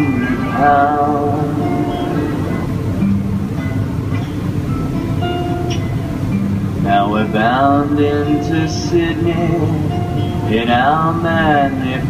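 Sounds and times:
guitar: 0:00.0 - 0:12.0
steady low hum: 0:00.0 - 0:12.0.

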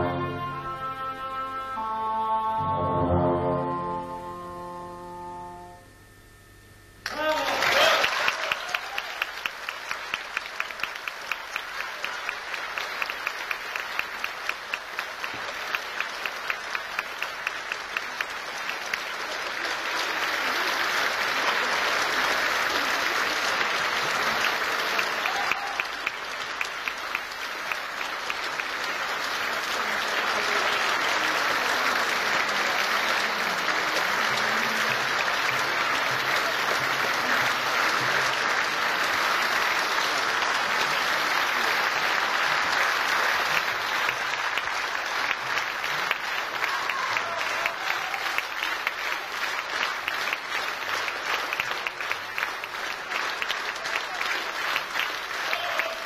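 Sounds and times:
audience applauding: 0:07.0 - 0:56.0.

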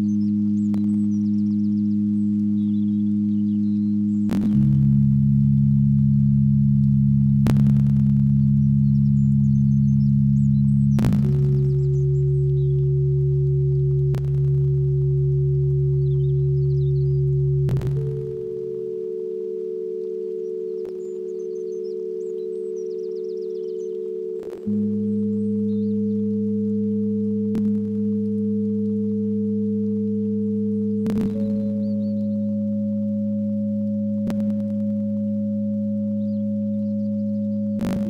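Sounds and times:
faint high chirps: 0:00.0 - 0:05.0, 0:06.9 - 0:38.0
bell-like synthesizer drone chords: 0:00.0 - 0:38.0.

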